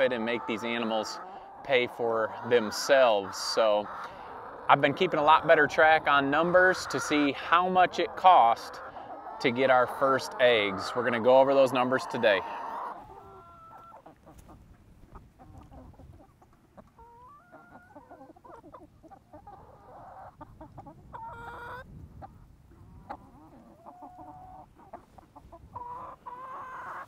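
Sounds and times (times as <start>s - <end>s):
hens clucking: 0.0s - 27.0s.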